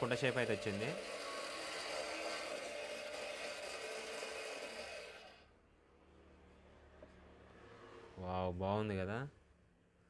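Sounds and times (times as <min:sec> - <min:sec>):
electric motor whirring: 0:00.0 - 0:05.4.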